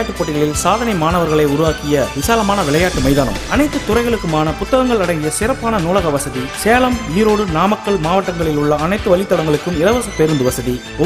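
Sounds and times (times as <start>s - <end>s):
instrumental backing music: 0.0s - 11.0s.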